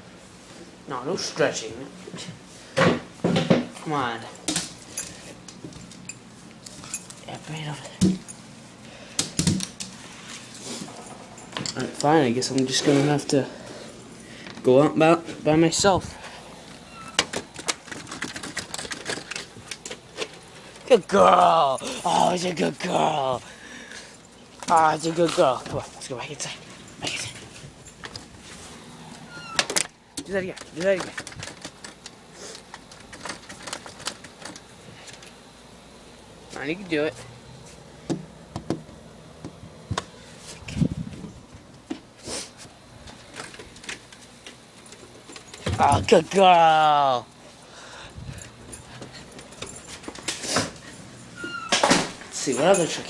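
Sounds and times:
dog claws tapping on door: 0:17.1 - 0:20.0, 0:29.6 - 0:32.2, 0:32.8 - 0:34.7.

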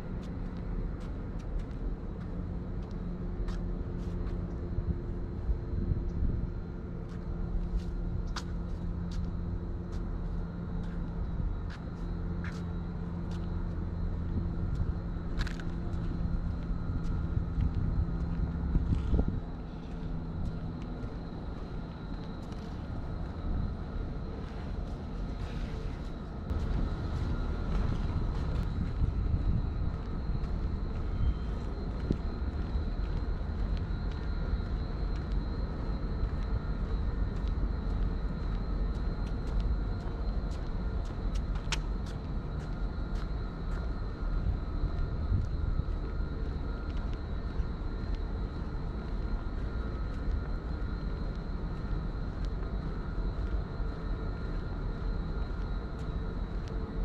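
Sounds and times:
faint steady tones: 0:00.0 - 0:57.0
steady low rumble: 0:00.0 - 0:57.0.

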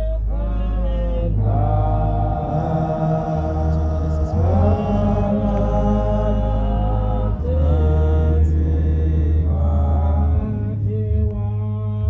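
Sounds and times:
low drone: 0:00.0 - 0:12.0
slow chanted singing: 0:00.0 - 0:12.0.

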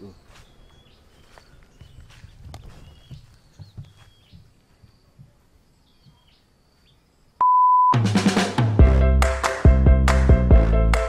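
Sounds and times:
soft footsteps: 0:00.2 - 0:06.3.

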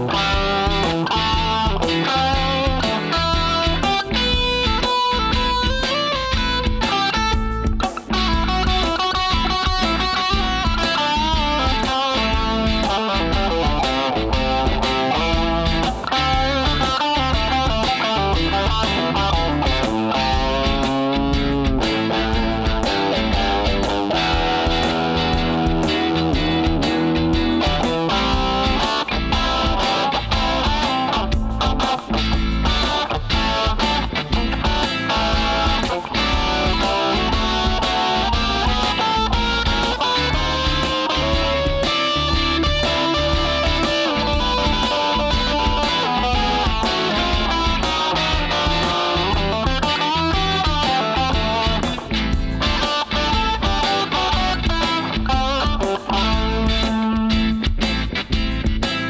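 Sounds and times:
electric guitar lead line: 0:00.0 - 0:59.0
looped backing track with beat: 0:00.0 - 0:59.0.

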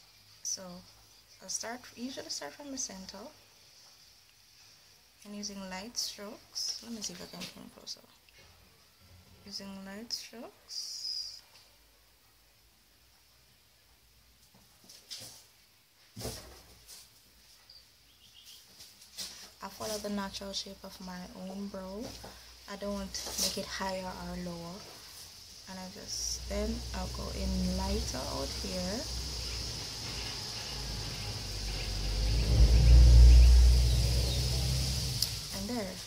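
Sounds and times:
vehicle passing with low rumble: 0:25.9 - 0:36.0.

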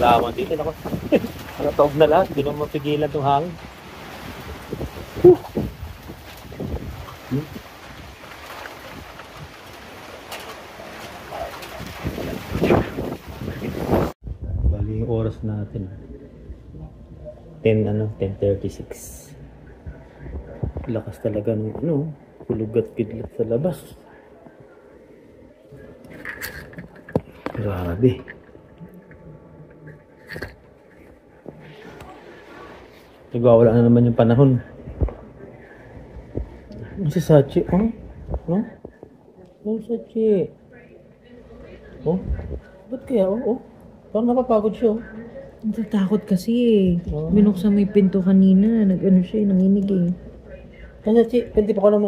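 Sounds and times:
heavy rain pouring: 0:00.0 - 0:14.2.

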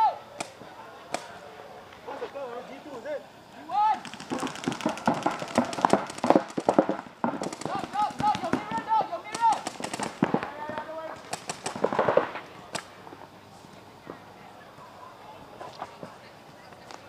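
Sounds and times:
players shouting: 0:00.0 - 0:01.8, 0:03.0 - 0:06.4, 0:07.4 - 0:11.9
paintball markers popping: 0:04.0 - 0:12.1.

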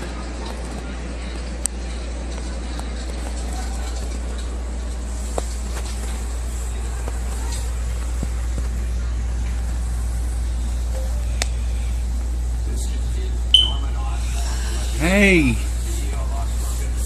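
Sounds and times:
low room hum: 0:00.0 - 0:17.0
short high beep: 0:13.5 - 0:13.9.

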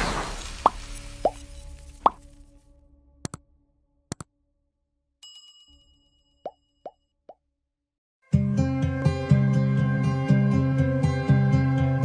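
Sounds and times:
bell-like ding: 0:05.2 - 0:06.8
background music: 0:08.2 - 0:12.0.

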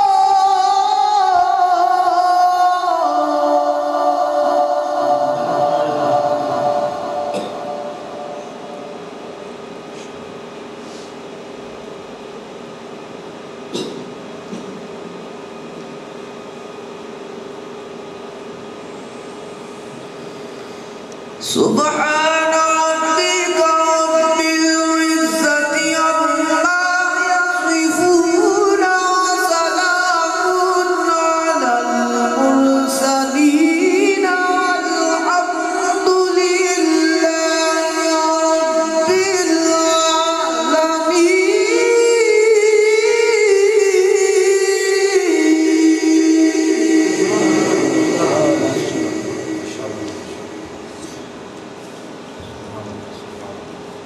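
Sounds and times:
background hum and hiss: 0:00.0 - 0:54.0
man reciting melodically: 0:21.4 - 0:50.6.

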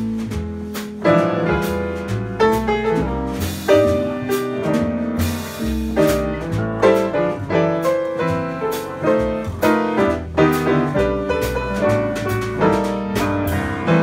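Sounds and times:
piano: 0:00.0 - 0:14.0
upright bass: 0:00.0 - 0:14.0.

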